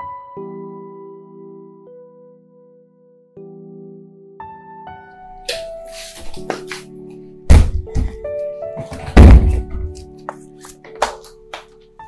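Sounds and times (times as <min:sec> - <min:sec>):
loud deep hits: 0:07.5 - 0:08.2, 0:09.2 - 0:09.9.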